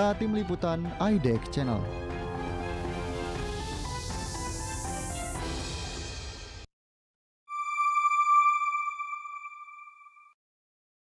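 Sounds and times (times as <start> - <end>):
sustained electronic chime: 7.5 - 10.4.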